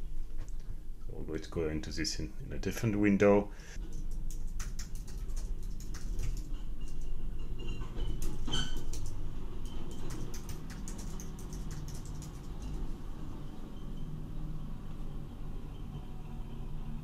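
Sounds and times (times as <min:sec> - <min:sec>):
steady low hum: 0:00.0 - 0:17.0
keyboard key clicks: 0:09.7 - 0:12.7.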